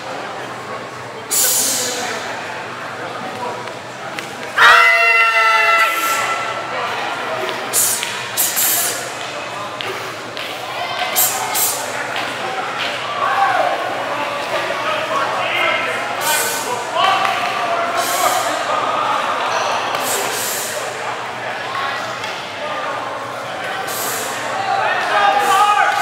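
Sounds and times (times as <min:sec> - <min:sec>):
voices murmuring in a hall: 0:00.0 - 0:26.0.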